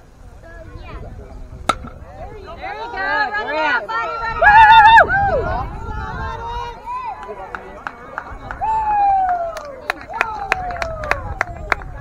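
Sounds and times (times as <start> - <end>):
bat cracking against ball: 1.7 - 2.0
crowd shouting: 2.6 - 7.4.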